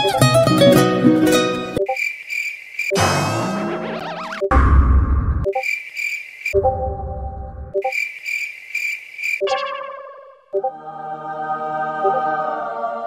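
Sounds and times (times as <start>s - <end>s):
pulsing insect-like chirping: 1.8s - 3.0s, 5.4s - 10.7s.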